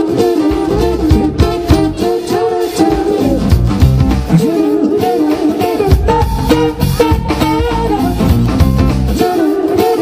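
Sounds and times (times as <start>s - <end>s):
drum kit strikes: 0.0s - 9.3s
live rock band playing: 0.0s - 10.0s.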